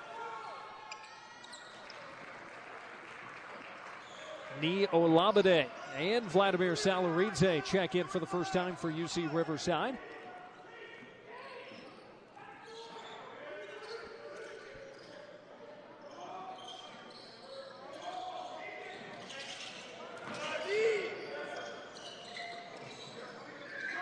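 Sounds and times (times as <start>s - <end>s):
shoe squeak: 1.0s - 1.9s, 12.6s - 15.4s, 16.0s - 20.1s, 20.9s - 24.0s
echoing voices: 4.5s - 10.7s.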